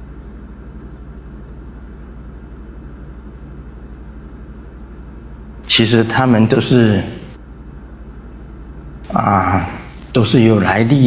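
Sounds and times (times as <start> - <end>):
low pulsing rumbling hum: 0.0 - 11.0.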